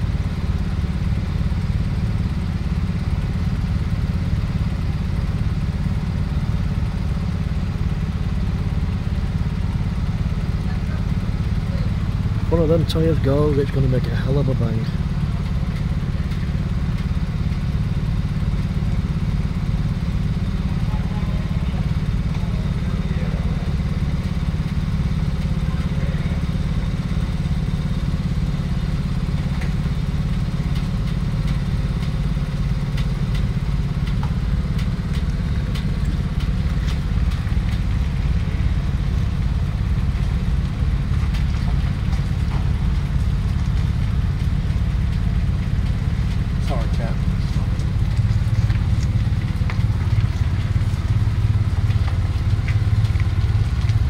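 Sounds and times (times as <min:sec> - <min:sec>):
diesel engine running low: 0:00.0 - 0:54.0
faint clicks and clatter: 0:11.6 - 0:54.0.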